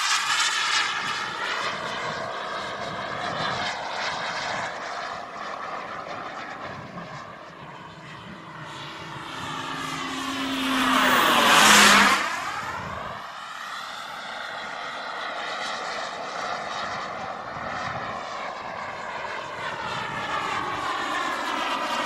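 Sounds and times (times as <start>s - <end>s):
model jet turbine whine: 0.0s - 22.0s.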